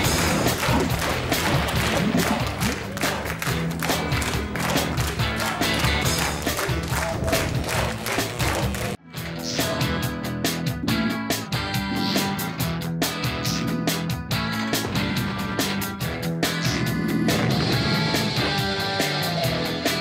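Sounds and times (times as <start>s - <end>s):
music with steady beat: 0.0s - 16.7s.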